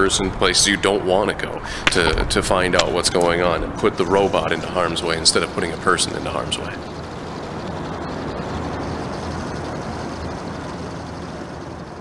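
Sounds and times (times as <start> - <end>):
wheels rolling on asphalt: 0.3 - 12.0
small drive motors whirring: 3.2 - 12.0.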